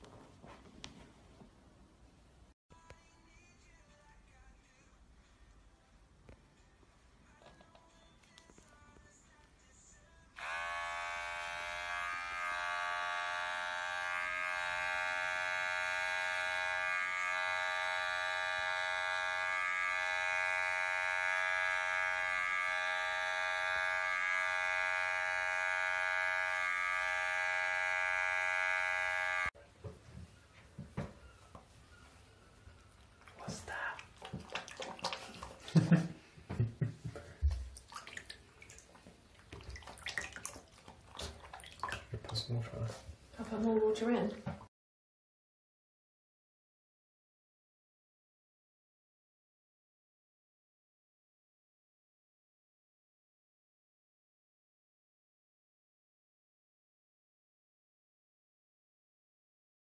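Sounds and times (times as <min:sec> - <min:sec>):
electric pet clipper buzzing: 0:10.4 - 0:29.6
knocks and splashes in bathtub: 0:33.3 - 0:42.7, 0:43.4 - 0:44.7.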